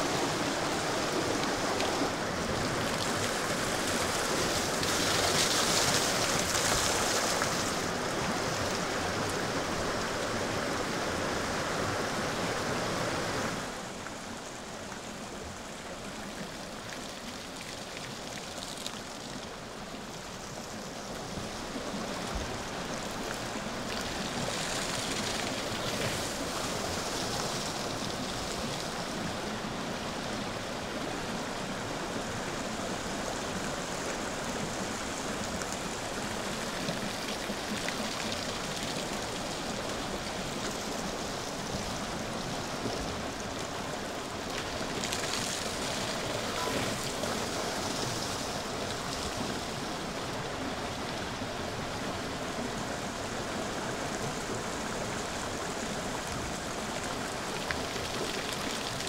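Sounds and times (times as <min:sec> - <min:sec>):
water wheel splashing: 0:00.0 - 0:10.8, 0:21.4 - 0:29.8, 0:33.8 - 0:51.8
river flowing over rocks: 0:00.0 - 0:59.0
water running down flume: 0:00.0 - 0:59.0.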